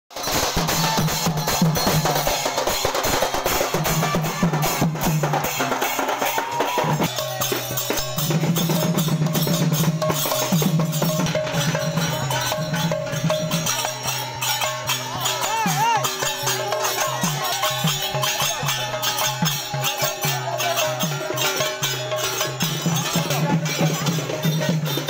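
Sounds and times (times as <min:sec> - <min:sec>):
drums played with sticks: 0:00.1 - 0:25.0.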